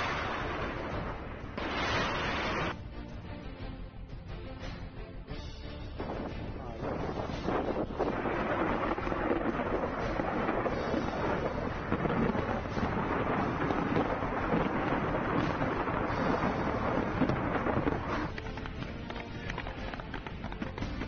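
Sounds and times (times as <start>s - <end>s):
distant explosions and weapons fire: 0.0s - 2.8s, 6.0s - 21.0s.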